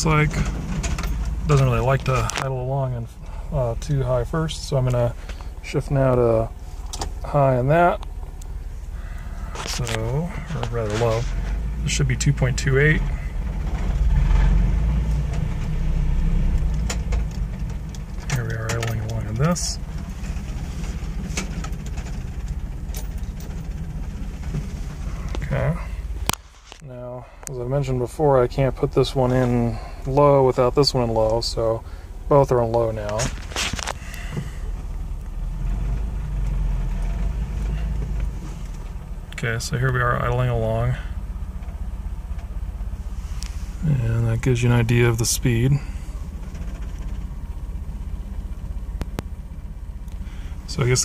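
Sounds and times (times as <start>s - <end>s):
engine idling inside cab: 0.0s - 51.0s.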